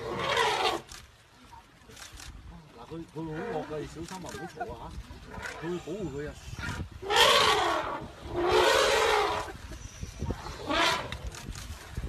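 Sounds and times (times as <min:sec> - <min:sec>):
elephant trumpeting: 0:00.0 - 0:00.9, 0:06.6 - 0:09.6, 0:10.3 - 0:11.3.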